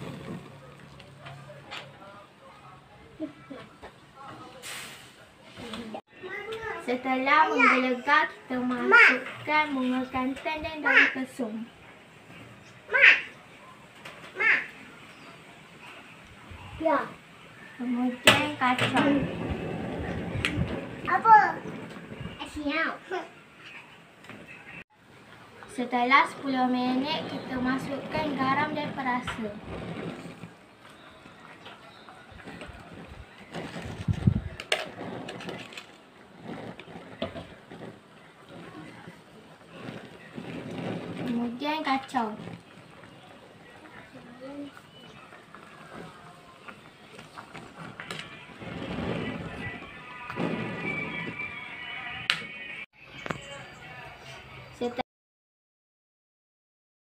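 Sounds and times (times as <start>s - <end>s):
metal spoon scraping plastic cups: 32.4s - 39.0s.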